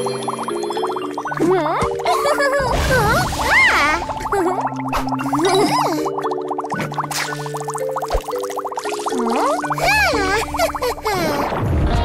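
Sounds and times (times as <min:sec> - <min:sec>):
bubbling cauldron pops and gurgles: 0:00.0 - 0:09.9
cartoon background music: 0:00.0 - 0:12.0.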